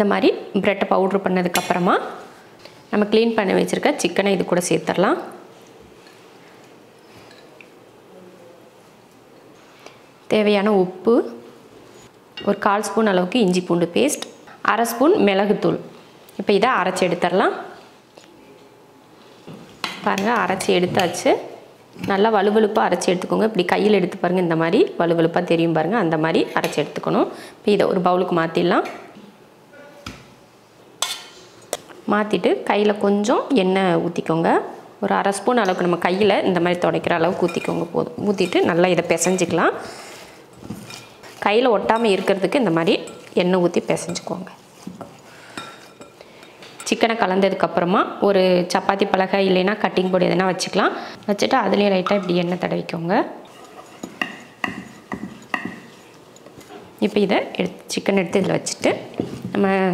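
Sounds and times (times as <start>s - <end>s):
woman speaking: 0.0s - 2.2s, 2.9s - 5.4s, 10.3s - 11.5s, 12.4s - 17.8s, 20.0s - 29.1s, 32.0s - 40.0s, 41.4s - 44.6s, 46.8s - 53.4s, 57.0s - 59.9s.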